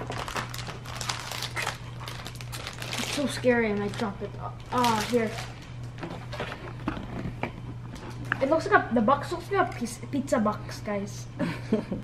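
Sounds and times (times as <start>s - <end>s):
plastic packaging crinkling: 0.0s - 8.4s.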